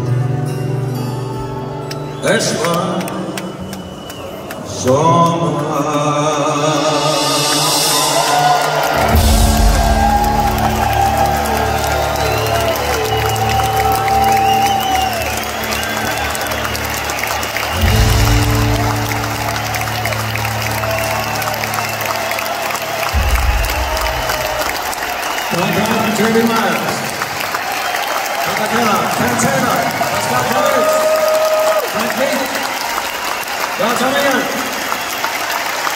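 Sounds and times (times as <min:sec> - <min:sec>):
crowd cheering: 0:01.6 - 0:35.9
live rock band playing: 0:07.0 - 0:25.5
drums and bass held chords: 0:09.0 - 0:11.1.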